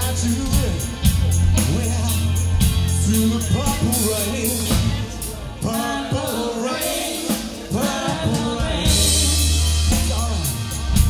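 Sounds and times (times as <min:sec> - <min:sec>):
drum kit: 0:00.0 - 0:11.0.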